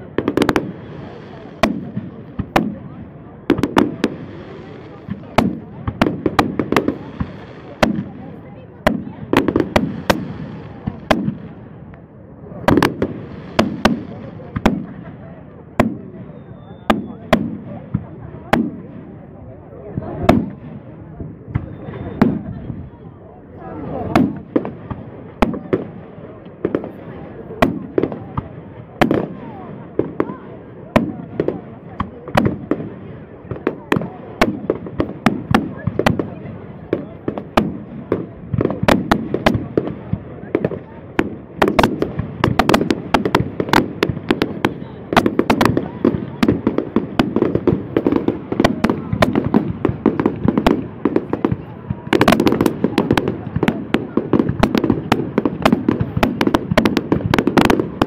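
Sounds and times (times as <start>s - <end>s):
fireworks bangs and crackles: 0.0s - 58.0s.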